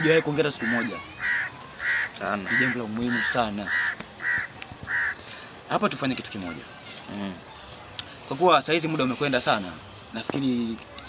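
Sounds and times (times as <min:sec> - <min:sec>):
bird cawing: 0:00.0 - 0:05.5.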